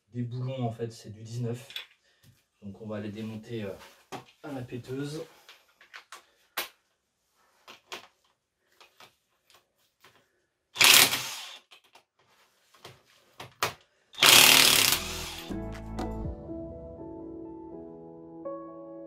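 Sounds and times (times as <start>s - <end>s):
impact wrench bursts: 10.8s - 11.7s, 14.2s - 15.5s
background music: 14.7s - 19.0s.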